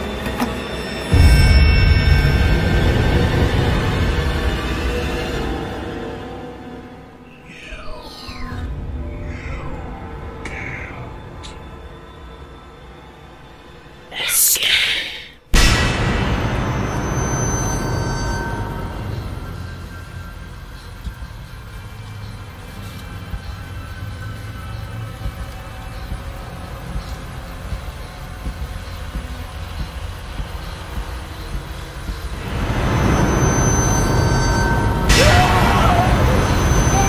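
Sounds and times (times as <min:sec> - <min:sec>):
deep rumbling drone: 0:01.1 - 0:14.1, 0:15.5 - 0:37.0
high held tones: 0:32.4 - 0:37.0.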